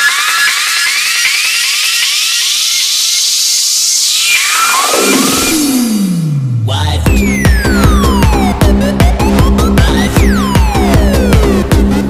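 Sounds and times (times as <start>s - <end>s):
rising synth chirps: 0.0s - 6.3s, 7.1s - 11.7s
falling synth sweep: 0.0s - 12.0s.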